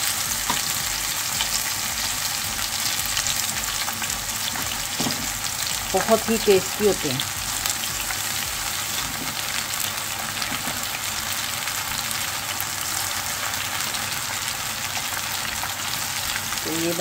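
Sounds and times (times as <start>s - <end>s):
batter deep-frying in hot oil: 0.0s - 17.0s.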